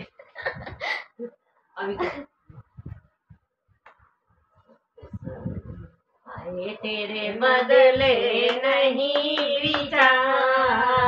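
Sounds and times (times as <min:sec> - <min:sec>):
women singing devotional song: 0:05.2 - 0:11.0
hand claps: 0:08.4 - 0:10.6.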